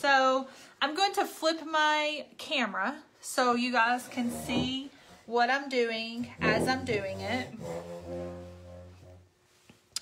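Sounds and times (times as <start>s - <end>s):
low-pitched hum: 4.1s - 5.1s, 6.2s - 9.2s.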